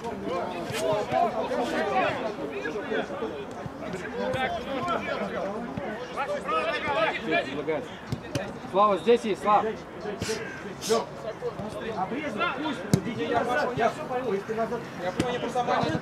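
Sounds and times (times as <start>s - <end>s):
men talking and calling out: 0.0s - 16.0s.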